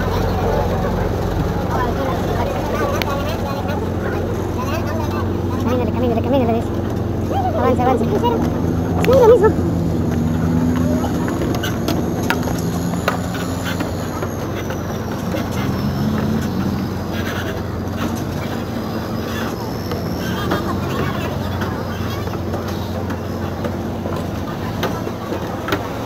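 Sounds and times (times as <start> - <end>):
boat engine running: 0.0 - 26.0
people talking: 0.0 - 26.0.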